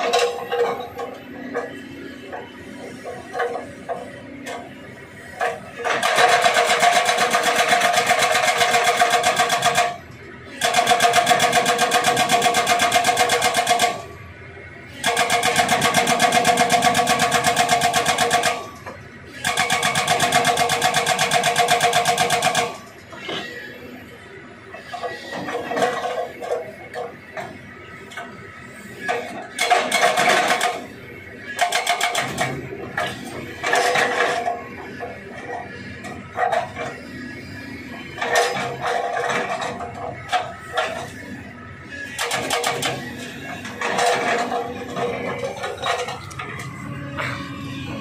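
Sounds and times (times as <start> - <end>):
excavator engine running: 0.0 - 48.0
hydraulic breaker hammering rock: 42.1 - 43.1.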